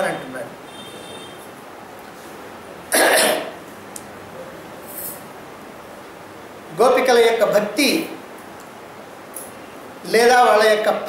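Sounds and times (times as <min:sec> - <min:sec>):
faint room hiss: 0:00.0 - 0:11.0
man coughing: 0:02.9 - 0:03.6.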